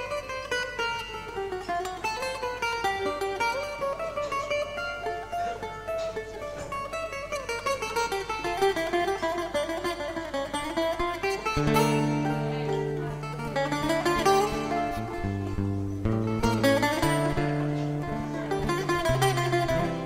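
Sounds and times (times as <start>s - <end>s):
bouzouki melody: 0.0s - 20.0s.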